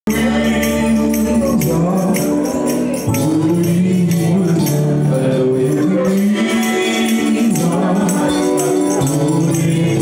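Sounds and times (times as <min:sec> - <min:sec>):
gospel singers: 0:00.1 - 0:10.0
quick steady percussion beat: 0:00.1 - 0:10.0.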